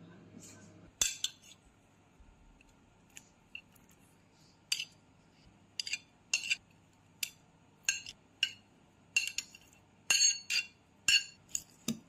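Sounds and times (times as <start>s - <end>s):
metal spoon clinking on plate: 1.0s - 1.6s, 5.8s - 6.6s, 7.2s - 12.0s.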